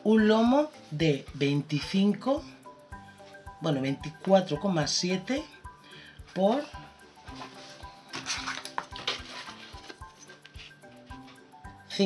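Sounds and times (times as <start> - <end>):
soft background music with beat: 0.0 - 12.0
paper rustling and scraping: 7.3 - 11.4.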